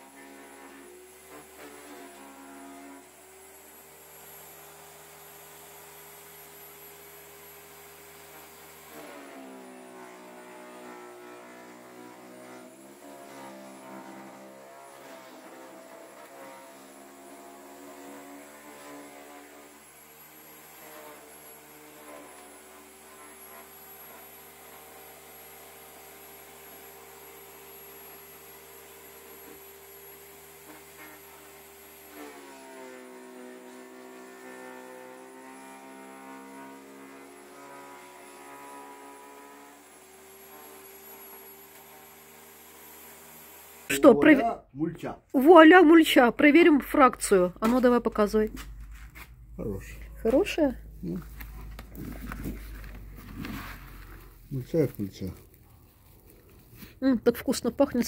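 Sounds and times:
electric garden shredder chipping branches: 0.0s - 44.6s, 45.4s - 58.0s.

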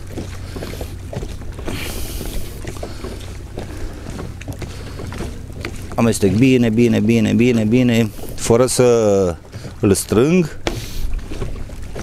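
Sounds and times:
low hum: 0.0s - 8.4s.

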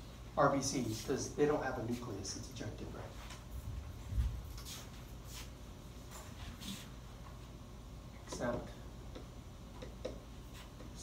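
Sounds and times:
marker tapping on whiteboard: 8.4s - 10.2s.

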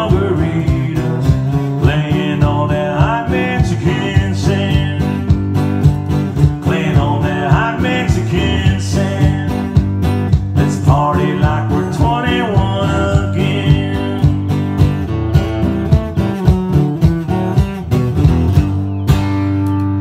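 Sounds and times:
person singing: 0.0s - 5.3s, 6.4s - 14.7s
acoustic guitar strumming: 0.0s - 20.0s
foot-operated drum beat: 0.0s - 20.0s.

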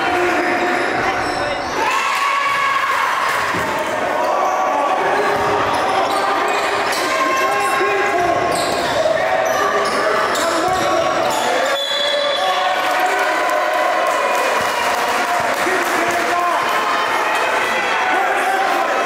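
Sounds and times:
voices in large gym: 0.0s - 19.0s.

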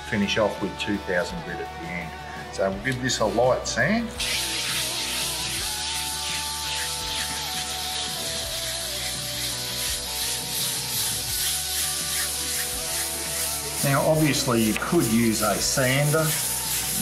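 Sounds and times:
background music with held notes: 0.0s - 17.0s
sandpaper rubbing on wood: 4.2s - 17.0s.

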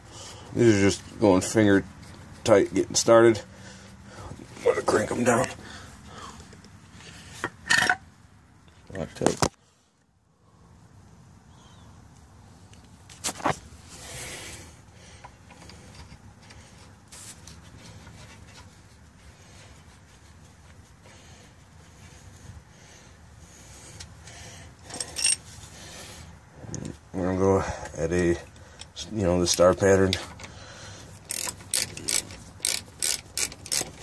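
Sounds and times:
metal nuts clinking and rubbing: 7.4s - 8.0s, 24.8s - 25.8s, 31.2s - 34.0s.

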